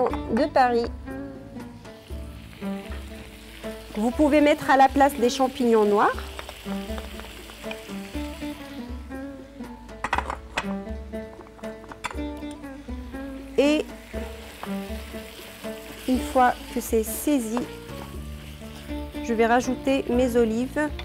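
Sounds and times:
background music with steady beat: 0.0 - 21.0
seafood sizzling in a wok: 1.5 - 9.9, 10.8 - 21.0.

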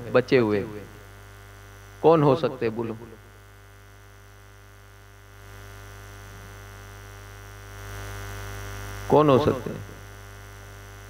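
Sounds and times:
background hiss: 0.0 - 3.6, 7.8 - 11.0
electrical mains hum and buzz: 0.0 - 11.0.

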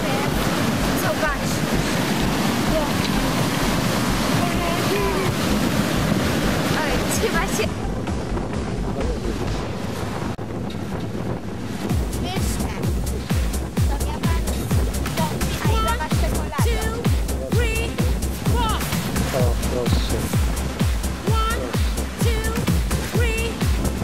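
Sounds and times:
wind on microphone: 0.0 - 24.0
music with steady beat: 7.7 - 9.8, 11.8 - 24.0.

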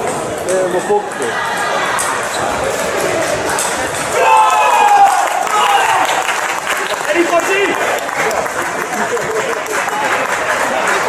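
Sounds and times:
echoing hall chatter: 0.0 - 11.0.

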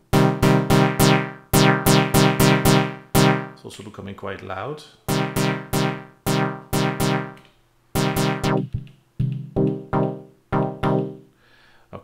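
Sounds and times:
synth chord stabs: 0.0 - 3.6, 5.1 - 11.3.

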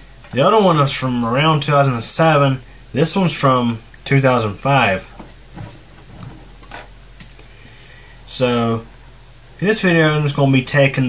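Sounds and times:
metal case knocks and rubs: 5.1 - 7.0.

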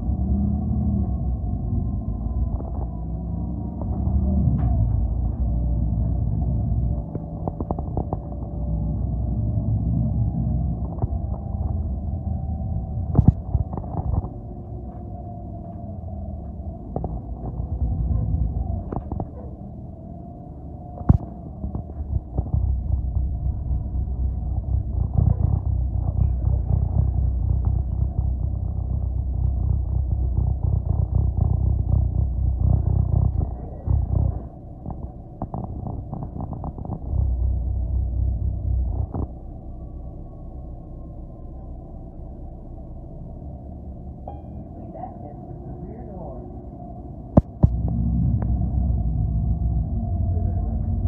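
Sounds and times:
bus engine and road rumble: 0.0 - 51.0.

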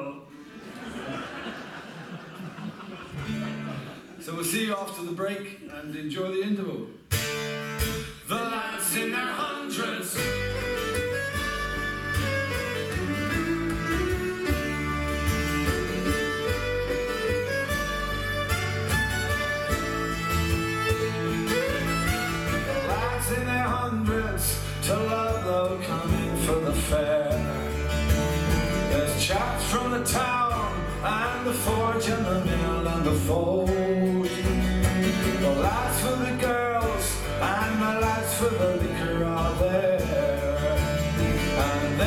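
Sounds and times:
strummed mandolin: 3.2 - 4.0, 10.2 - 42.0
double bass: 10.2 - 42.0
fiddle melody: 10.2 - 42.0.

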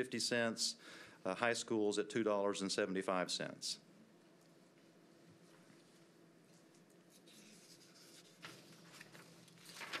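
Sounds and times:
paper rustling: 7.1 - 10.0.

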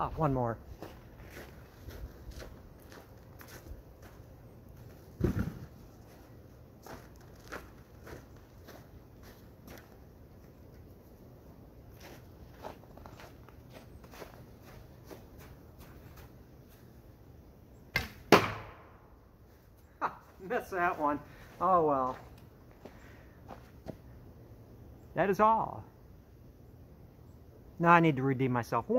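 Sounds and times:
footsteps in snow: 0.6 - 11.1, 11.8 - 17.0, 19.4 - 24.0.

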